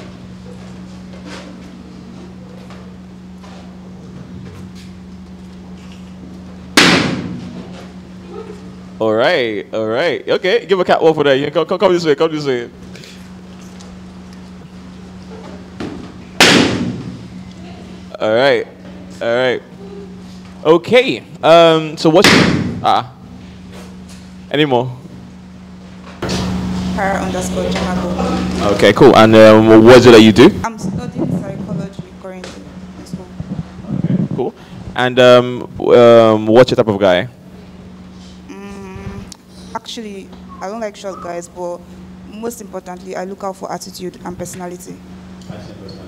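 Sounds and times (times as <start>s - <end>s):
steady low hum: 0.0s - 46.0s
balloon bursting bang: 6.8s - 7.5s, 16.4s - 17.2s, 22.2s - 22.9s.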